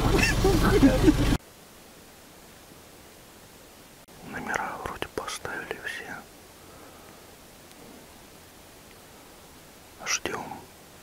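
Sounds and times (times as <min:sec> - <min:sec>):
faint steady hiss: 0:00.0 - 0:11.0
person whispering: 0:04.2 - 0:06.3, 0:10.0 - 0:10.7.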